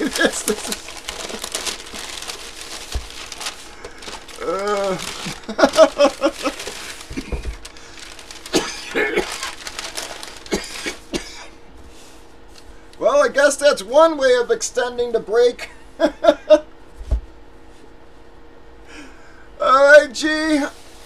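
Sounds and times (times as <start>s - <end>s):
man laughing: 0.0s - 1.6s, 4.4s - 7.5s, 15.6s - 16.7s
packaging rustling and crinkling: 0.0s - 11.1s.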